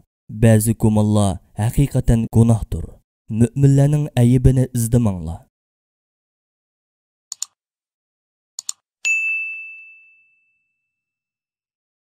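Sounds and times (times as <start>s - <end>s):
notification bell ding: 9.1s - 11.1s.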